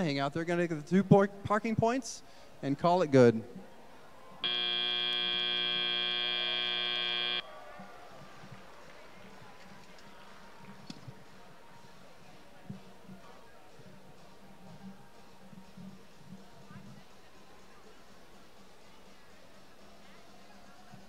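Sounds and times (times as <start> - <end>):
faint arena background: 0.0 - 21.0
buzzer blaring: 4.4 - 7.4.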